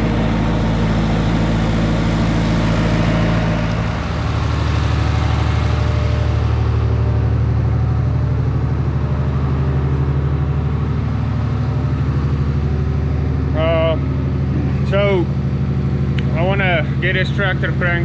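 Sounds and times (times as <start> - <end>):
engine idling with fast throb: 0.0 - 18.0
tractor engine running: 0.0 - 18.0.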